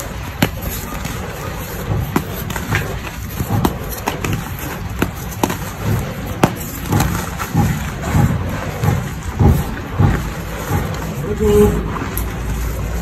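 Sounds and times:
chalk crunching thuds: 0.0 - 11.1
sharp chalk cracks: 0.0 - 11.1.

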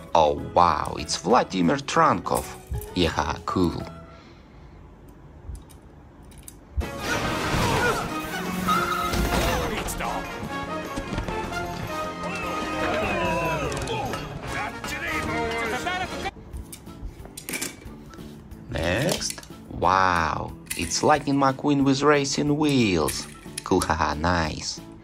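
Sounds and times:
dramatic music: 6.8 - 16.6.

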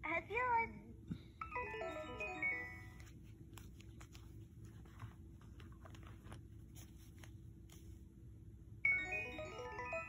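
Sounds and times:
toy electronic chime jingle: 8.9 - 10.0.

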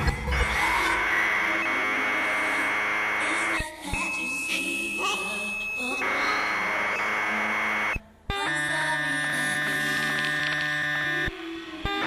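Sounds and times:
electronic noise music: 0.0 - 12.0.

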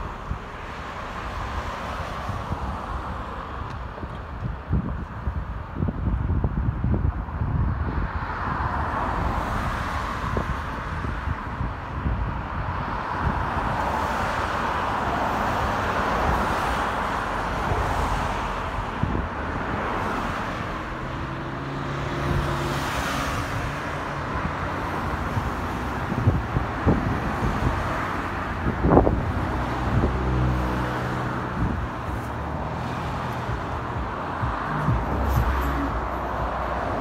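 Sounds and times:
road traffic: 0.0 - 37.0.

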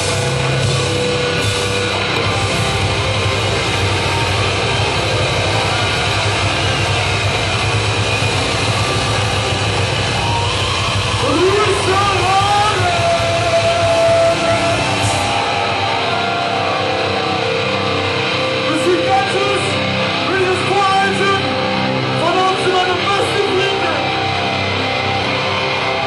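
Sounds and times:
live heavy metal band: 0.0 - 26.0.

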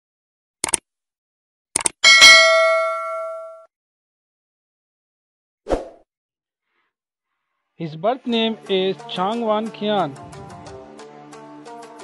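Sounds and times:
bell ding: 2.0 - 3.7.

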